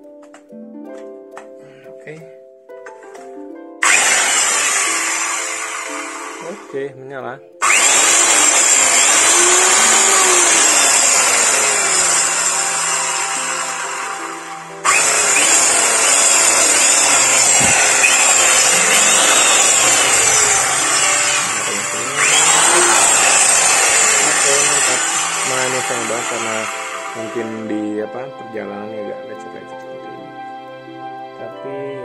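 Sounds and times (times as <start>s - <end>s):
circular saw motor whine: 3.8s - 6.7s, 7.6s - 27.9s.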